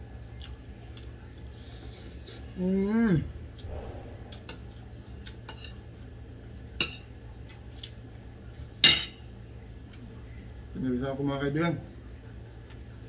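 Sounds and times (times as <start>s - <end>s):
cutlery clinking on a plate: 8.8s - 9.2s.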